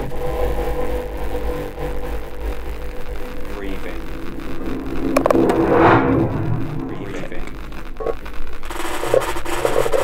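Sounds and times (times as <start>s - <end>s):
deep electronic rumble: 0.0s - 8.7s.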